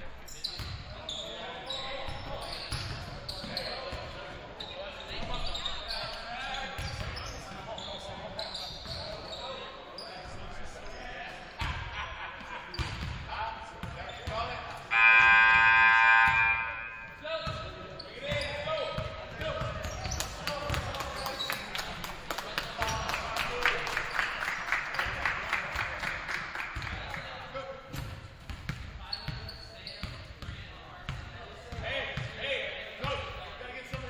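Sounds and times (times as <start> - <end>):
voices in background: 0.0 - 34.0
basketballs bouncing on gym floor: 12.7 - 14.5, 17.4 - 21.4, 27.9 - 32.4
buzzer tone: 14.9 - 17.2.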